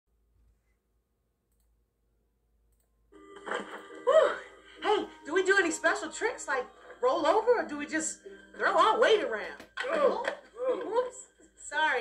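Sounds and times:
film soundtrack from laptop speakers: 0.1 - 12.0.

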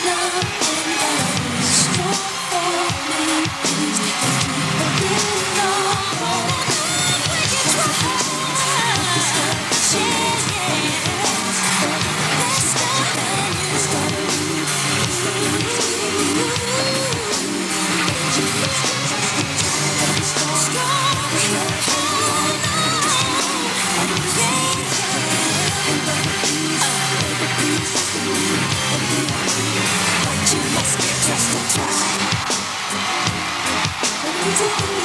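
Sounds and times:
drums: 0.0 - 35.0
electric guitar: 0.0 - 35.0
rock band playing live: 0.0 - 35.0.

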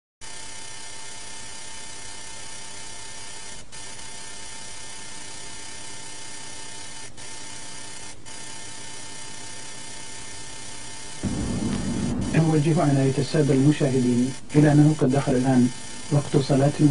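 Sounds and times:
low rumble: 11.2 - 13.7
faint hum: 11.2 - 14.8.

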